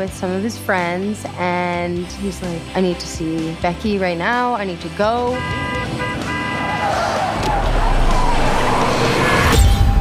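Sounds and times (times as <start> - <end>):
car rumbling on road: 4.2 - 9.6
car horn: 5.2 - 7.1.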